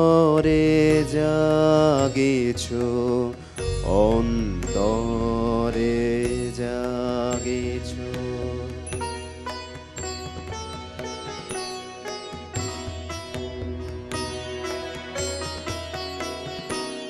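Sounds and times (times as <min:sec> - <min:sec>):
man singing: 0:00.0 - 0:09.2
harmonium: 0:00.0 - 0:17.0.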